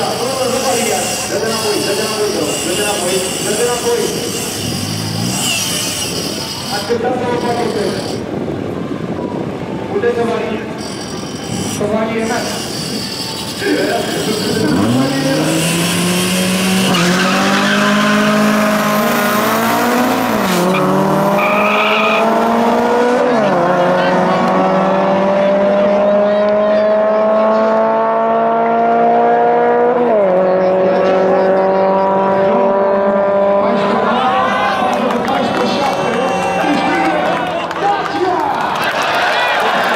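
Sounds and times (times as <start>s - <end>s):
race car engines accelerating: 0.0s - 39.9s.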